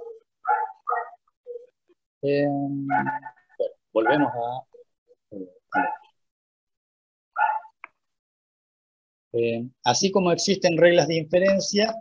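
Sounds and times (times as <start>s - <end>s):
animal whining: 5.7s - 6.1s.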